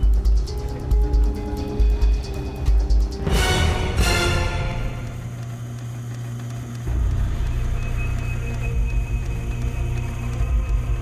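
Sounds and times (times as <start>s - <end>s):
low sustained drone music: 0.0s - 5.9s, 6.8s - 11.0s.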